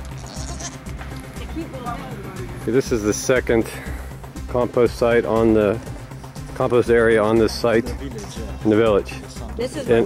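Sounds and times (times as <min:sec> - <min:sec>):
goat bleating: 0:00.0 - 0:00.9.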